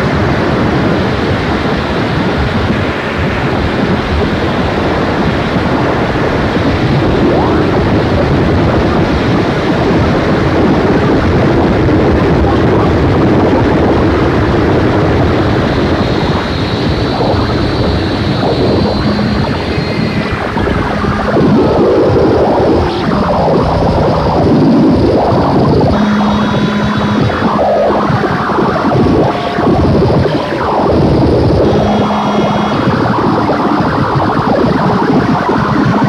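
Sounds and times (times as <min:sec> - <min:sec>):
harsh distorted noise music: 0:00.0 - 0:36.0
low steady hum: 0:11.8 - 0:36.0.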